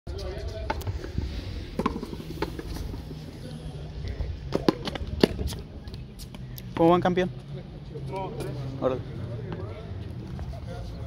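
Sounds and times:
ball hitting concrete wall: 1.7s - 3.0s, 4.5s - 5.6s.

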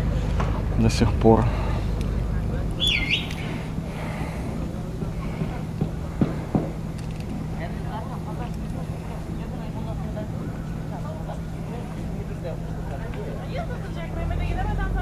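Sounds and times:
faint distant voices: 0.0s - 15.0s
steady low hum: 0.0s - 15.0s.

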